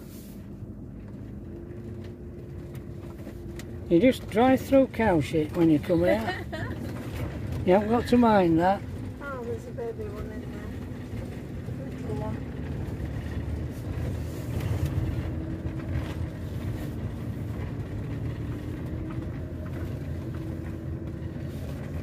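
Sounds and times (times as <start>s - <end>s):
engine low rumble: 0.0s - 22.0s.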